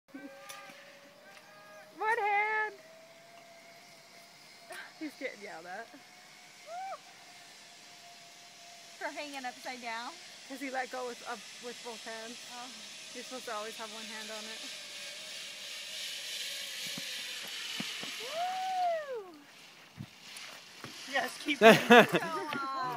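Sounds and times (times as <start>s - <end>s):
zipline trolley whine: 0.1s - 22.9s.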